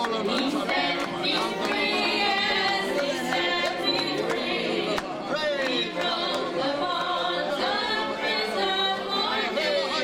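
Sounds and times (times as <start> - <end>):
congregation singing: 0.0 - 10.0.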